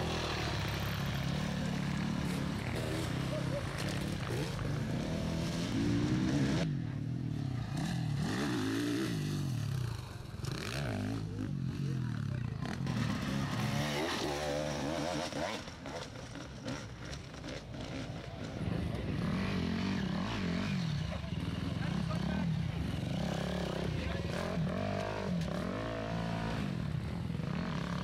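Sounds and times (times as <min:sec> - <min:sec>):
motorcycle engine revving: 0:00.0 - 0:28.0.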